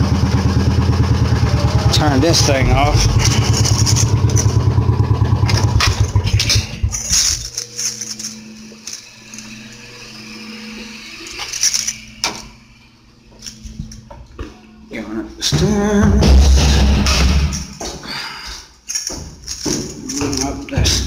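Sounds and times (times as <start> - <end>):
small engine idling: 0.0 - 11.9.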